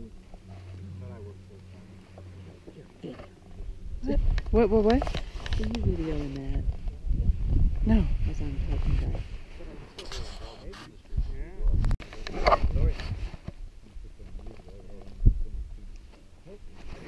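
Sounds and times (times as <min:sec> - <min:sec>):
wind rumble on microphone: 0:00.0 - 0:17.0.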